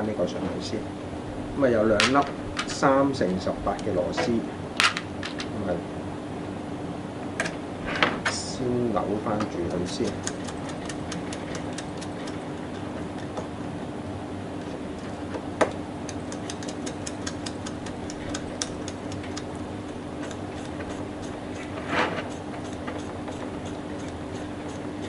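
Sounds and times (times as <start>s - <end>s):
steady low hum: 0.0s - 25.0s
hex driver turning screw clicks: 16.0s - 19.5s.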